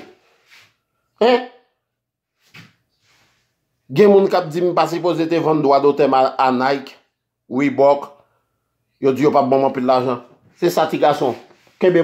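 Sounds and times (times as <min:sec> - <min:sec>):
man talking: 0:01.2 - 0:01.6, 0:03.9 - 0:08.2, 0:09.0 - 0:12.0.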